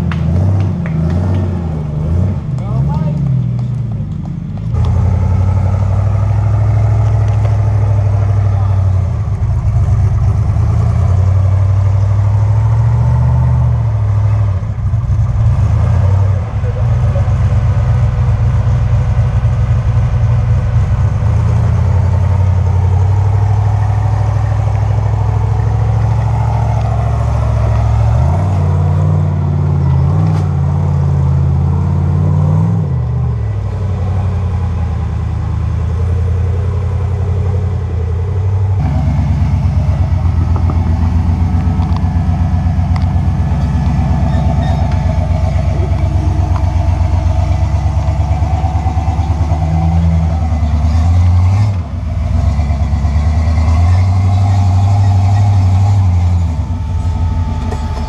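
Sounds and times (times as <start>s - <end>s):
throbbing engine: 0.0s - 58.0s
vehicle engine revving under load: 0.0s - 58.0s.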